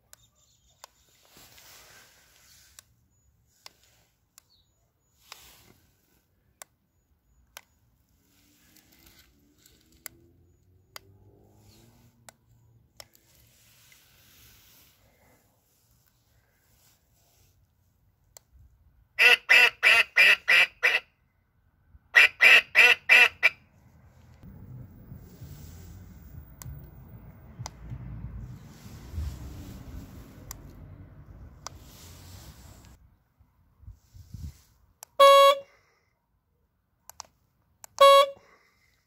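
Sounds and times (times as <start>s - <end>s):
short car horn honks: 35.2s - 35.8s, 38.0s - 38.6s.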